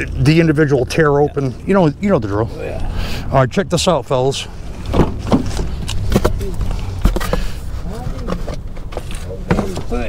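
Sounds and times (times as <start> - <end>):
knocks and clicks of handling: 4.8 - 10.0
heavy thump: 4.9 - 7.5.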